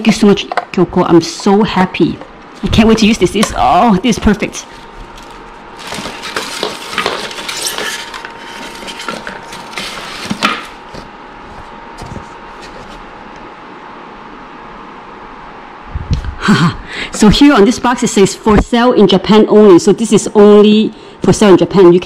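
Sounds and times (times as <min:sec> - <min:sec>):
plastic and paper rustling: 0:02.6 - 0:13.0.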